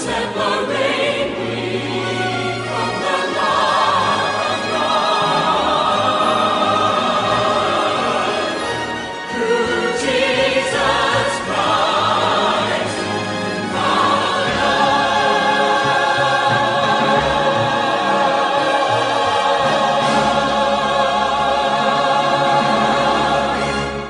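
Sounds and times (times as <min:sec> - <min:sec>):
choir singing held chords: 0:00.0 - 0:24.0.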